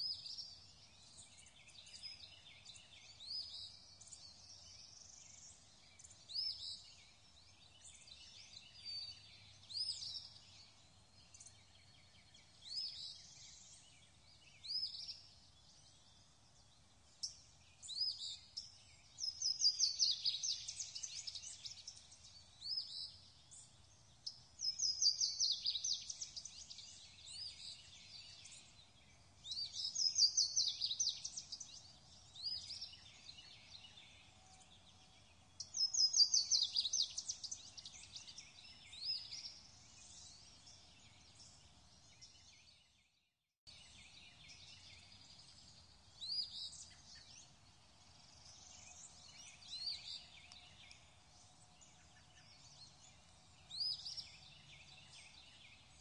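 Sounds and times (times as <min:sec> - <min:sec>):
songbird singing: 0:00.0 - 0:56.0.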